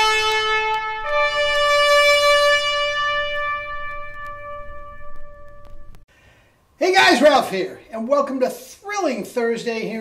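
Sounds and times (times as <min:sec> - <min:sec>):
trumpet holding long note: 0:00.0 - 0:06.0.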